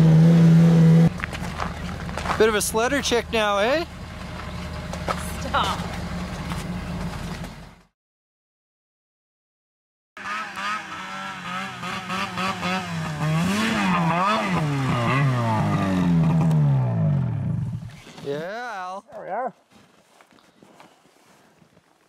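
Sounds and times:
snowmobile engine revving: 0.0 - 1.1, 10.2 - 18.4.

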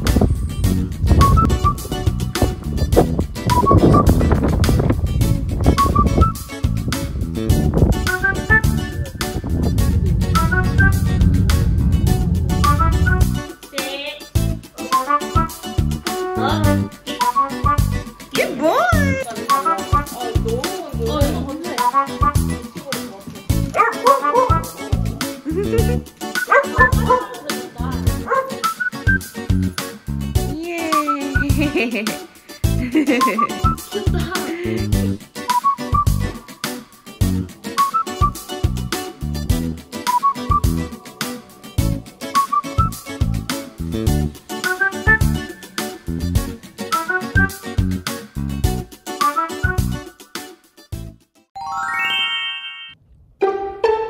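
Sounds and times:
background music with steady beat: 0.0 - 51.5
small dogs barking and yipping: 23.7 - 24.9, 26.3 - 27.5, 28.2 - 28.8
rising run of chime notes: 51.6 - 53.0.

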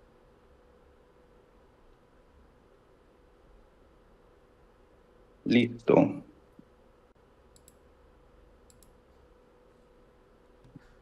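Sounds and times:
faint steady hum: 0.0 - 11.0
faint sharp clicks: 7.5 - 7.8, 8.6 - 9.0.

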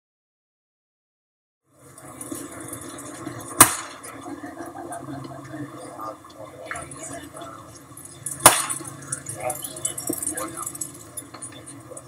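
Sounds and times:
faint outdoor ballfield background: 1.6 - 12.0
baseball bat cracking ball: 3.6 - 4.2, 8.4 - 8.9.

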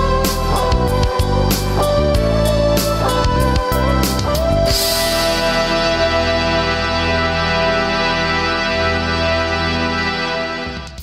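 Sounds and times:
bass notes: 0.0 - 11.0
keyboard sustaining notes: 0.0 - 11.0
reggae band music: 0.0 - 11.0.

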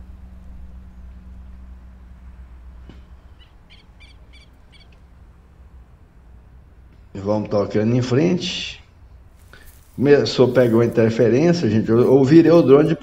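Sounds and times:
low background hum: 0.0 - 13.0
bird chirping: 3.2 - 5.1.

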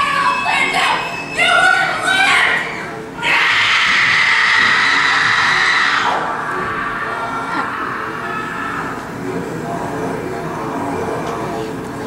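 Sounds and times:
loud harsh scream: 0.0 - 9.3.

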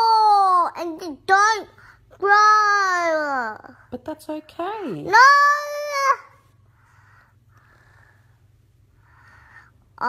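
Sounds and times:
boy shouting: 5.1 - 6.4
faint breaths: 6.4 - 10.0.

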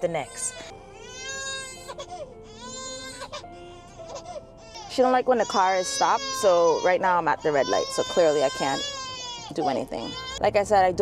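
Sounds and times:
infant crying: 0.3 - 10.4.

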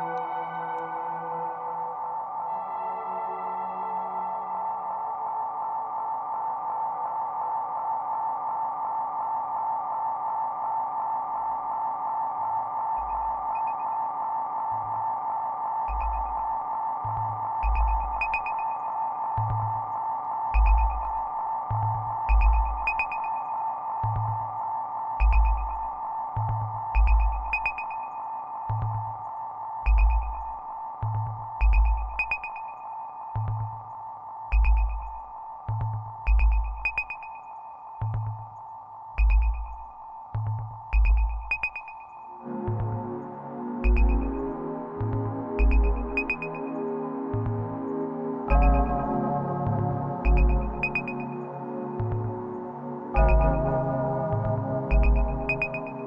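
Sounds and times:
crisp percussive ticks: 25.2 - 28.0, 28.7 - 32.7, 33.4 - 46.6, 47.4 - 51.2, 53.2 - 55.9.

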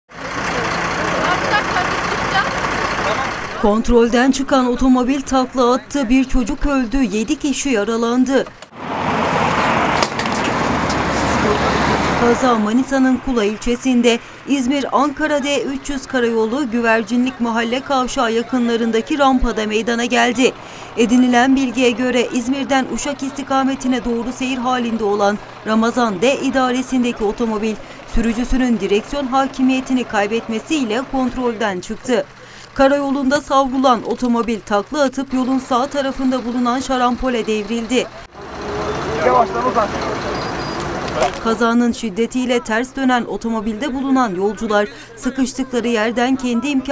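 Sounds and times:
highway traffic noise: 0.1 - 46.9
road vehicles rushing: 0.1 - 46.9.

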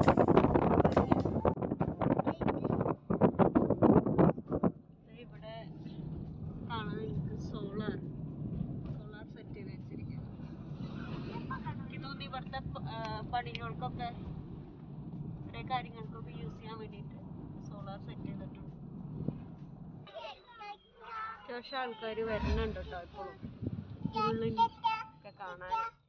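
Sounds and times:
wind buffeting microphone: 0.0 - 20.0, 22.3 - 25.0
road vehicle droning: 0.0 - 20.1, 21.1 - 25.7
voices talking: 15.5 - 18.7, 20.0 - 26.0.

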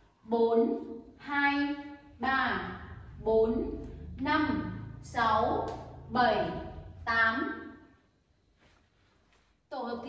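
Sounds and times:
woman counting aloud: 0.3 - 7.7.

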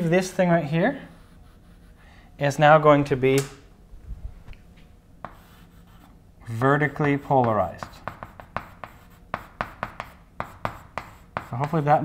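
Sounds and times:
chalk tapping and scraping: 5.2 - 12.0.

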